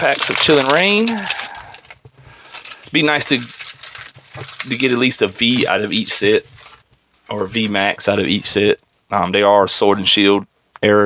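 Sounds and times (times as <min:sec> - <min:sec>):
person speaking: 0:00.0 - 0:01.9, 0:02.8 - 0:03.6, 0:04.4 - 0:11.0
foil wrapper crinkling: 0:00.0 - 0:07.0.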